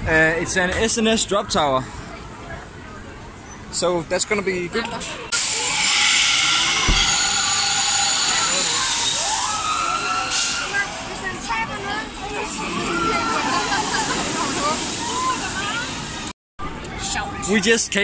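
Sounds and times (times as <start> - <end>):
rush of compressed air with whine: 5.3 - 11.2
riders screaming: 5.4 - 11.0.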